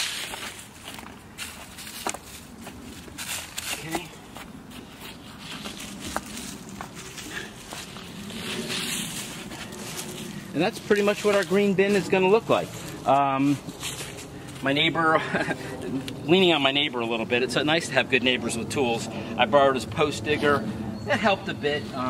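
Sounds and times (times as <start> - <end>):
shuffling over dry leaves: 0.0 - 16.1
hand scraping and patting soil: 0.0 - 16.2.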